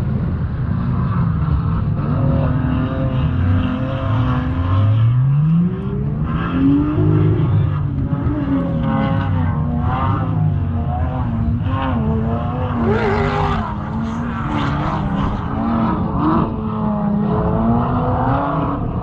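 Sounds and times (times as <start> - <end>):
off-road vehicle engine revving: 0.6 - 19.0.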